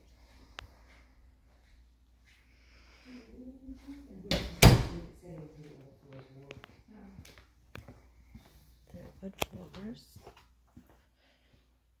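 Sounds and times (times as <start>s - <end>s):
closet door knocking shut: 4.3s - 5.1s.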